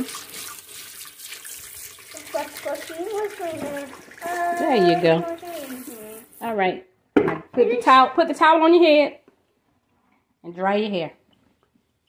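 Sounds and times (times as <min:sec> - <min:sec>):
tap water running into sink: 0:00.0 - 0:06.4
person speaking: 0:02.2 - 0:06.6.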